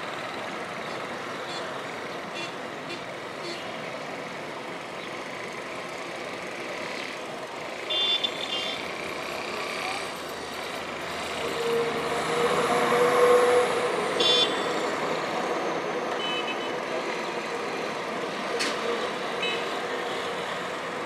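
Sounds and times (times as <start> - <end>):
steady traffic hum: 0.0 - 21.0
vehicle engine passing: 11.0 - 15.4.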